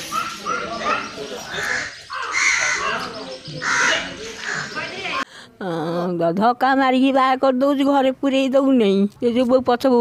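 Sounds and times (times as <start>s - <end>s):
bird harsh calls: 0.0s - 5.2s.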